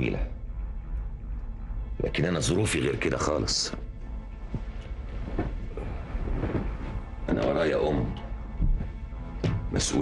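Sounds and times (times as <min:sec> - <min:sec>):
footsteps: 0:04.5 - 0:07.6.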